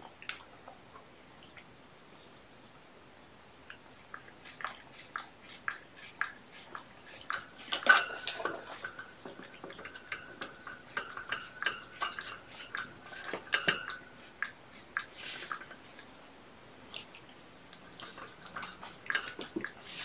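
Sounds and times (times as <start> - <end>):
kitten chewing food: 3.7 - 16.1.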